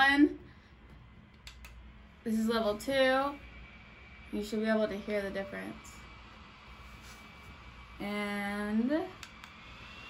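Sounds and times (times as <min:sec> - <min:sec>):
neck fan whirring: 0:00.0 - 0:10.0.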